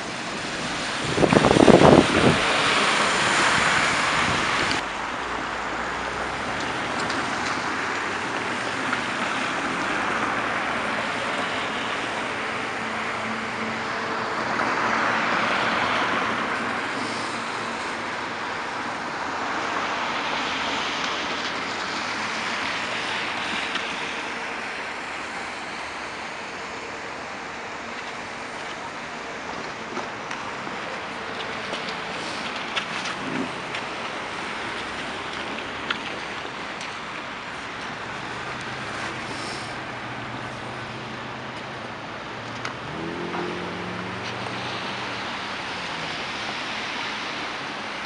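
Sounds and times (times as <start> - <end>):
cars passing on wet road: 0.0 - 48.0.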